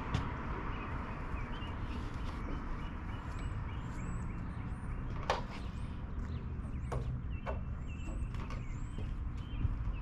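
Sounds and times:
creaks of footsteps in trailer: 0:02.4 - 0:10.0.

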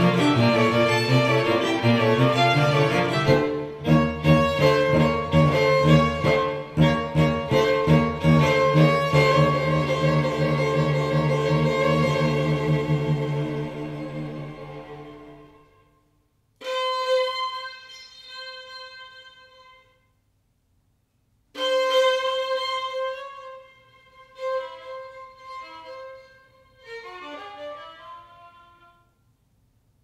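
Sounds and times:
bowed string quartet: 0:00.0 - 0:15.9, 0:21.6 - 0:28.8.

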